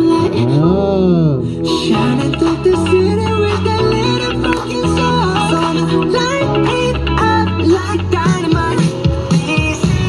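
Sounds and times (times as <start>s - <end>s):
bass line: 0.0s - 10.0s.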